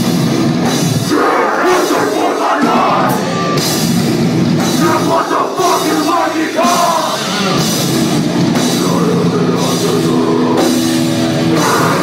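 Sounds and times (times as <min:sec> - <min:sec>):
drum kit with cymbals: 0:00.0 - 0:12.0
electric guitars: 0:00.0 - 0:12.0
hardcore band playing live: 0:00.0 - 0:12.0.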